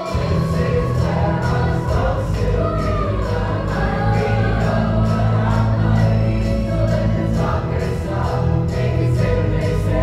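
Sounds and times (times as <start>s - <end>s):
accompaniment with steady beat: 0.0s - 10.0s
youth choir singing: 0.0s - 10.0s
sustained low bass notes: 0.1s - 10.0s.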